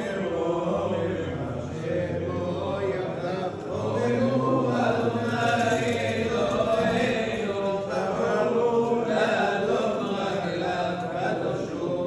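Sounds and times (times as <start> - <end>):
men chanting prayer: 0.0 - 12.0.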